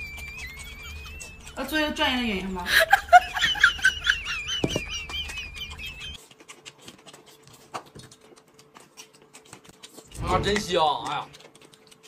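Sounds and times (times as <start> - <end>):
cucumber crunching when chewed: 0.0 - 1.6, 6.2 - 12.0.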